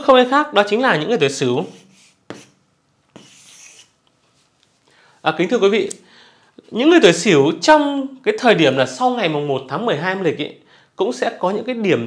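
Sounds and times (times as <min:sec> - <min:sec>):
chalk tapping on chalkboard: 0:01.6 - 0:03.9
chalk scratching on chalkboard: 0:01.6 - 0:04.0.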